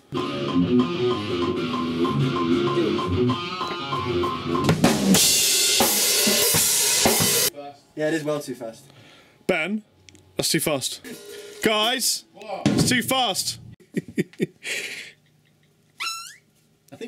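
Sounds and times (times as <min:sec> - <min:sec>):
backing music: 0:00.0 - 0:07.5
drum kit playing: 0:00.0 - 0:07.5, 0:11.0 - 0:13.8
loud cymbal wash: 0:05.1 - 0:07.5, 0:11.0 - 0:11.6.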